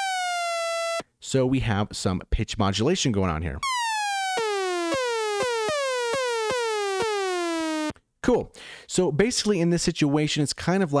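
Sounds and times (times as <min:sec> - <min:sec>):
synth sawtooth notes gliding down: 0:00.0 - 0:01.0, 0:03.6 - 0:07.9.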